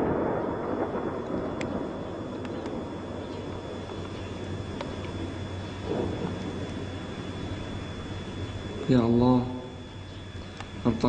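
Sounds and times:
artillery explosion rumble: 0.0 - 7.9.

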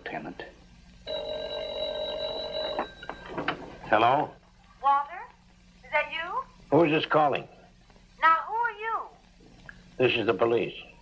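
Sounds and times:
telephone bell ringing: 1.1 - 3.4.

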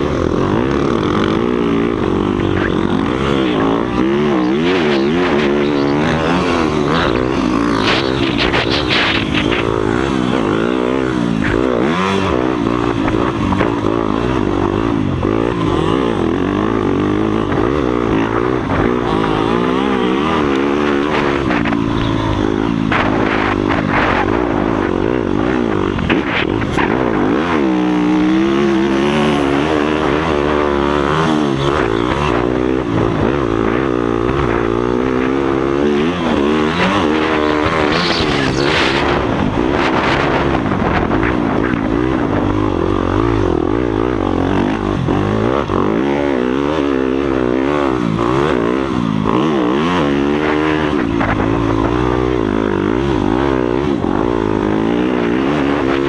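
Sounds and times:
motocross bike engine revving: 0.0 - 56.0.

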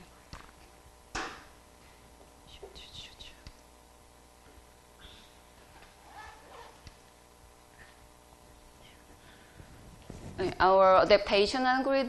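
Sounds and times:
person whispering: 2.5 - 3.6, 8.8 - 9.2.

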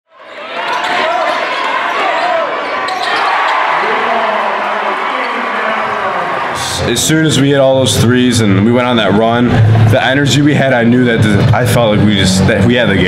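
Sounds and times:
crowd voices din: 0.1 - 13.0.

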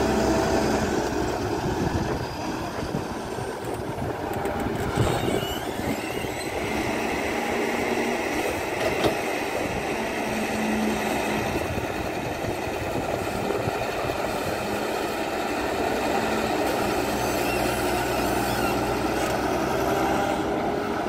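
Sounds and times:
excavator diesel engine running: 0.0 - 21.0.

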